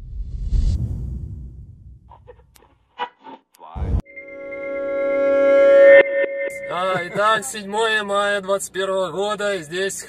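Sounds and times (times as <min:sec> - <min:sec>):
buzzy drone: 0:04.0 - 0:08.0.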